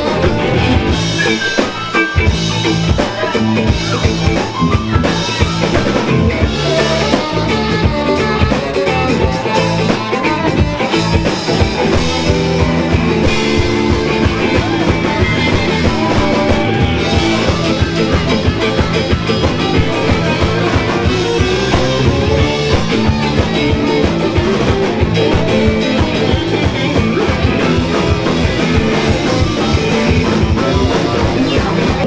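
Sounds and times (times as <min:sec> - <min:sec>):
drum kit steady beat: 0:00.0 - 0:32.0
electric guitar: 0:00.0 - 0:32.0
keyboard: 0:00.0 - 0:32.0.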